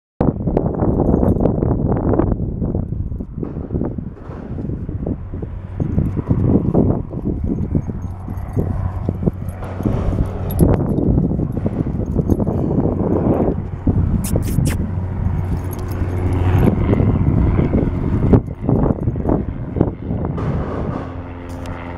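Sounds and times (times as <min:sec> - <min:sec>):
low microphone rumble: 0:00.2 - 0:21.9.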